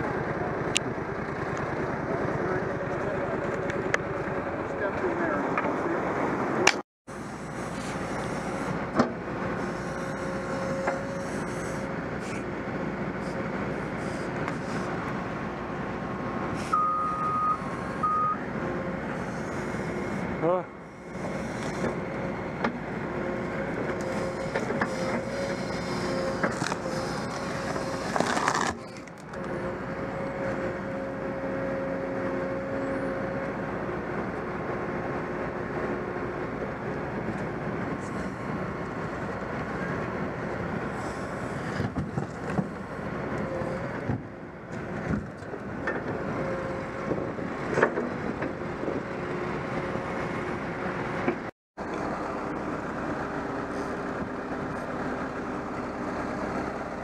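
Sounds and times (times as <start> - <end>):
diesel excavator engine running: 0.0 - 57.0
dumper engine running: 0.0 - 57.0.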